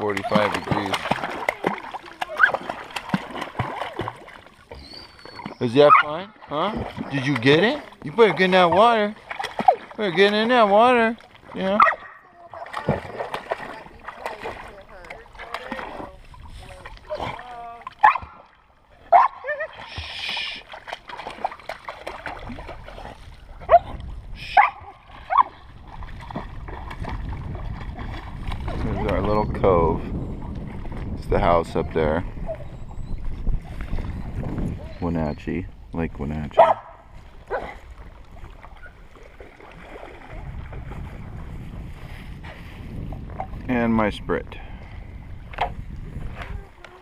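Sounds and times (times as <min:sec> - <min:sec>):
splashing through shallow water: 0:00.0 - 0:35.2, 0:36.2 - 0:43.8
young dog whining and yipping: 0:04.7 - 0:06.1, 0:31.8 - 0:33.3
wind rumble on microphone: 0:22.3 - 0:39.1, 0:39.8 - 0:47.0.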